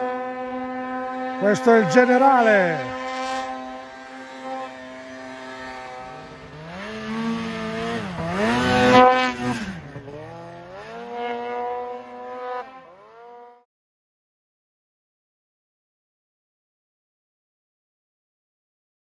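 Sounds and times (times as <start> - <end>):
snowmobile engine revving: 0.0 - 13.7.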